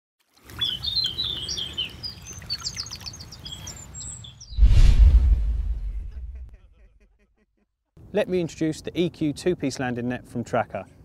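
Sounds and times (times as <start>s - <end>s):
songbirds chirping and singing: 0.6s - 4.6s
loud rush with deep boom: 4.6s - 6.5s
low rumble: 4.6s - 6.6s.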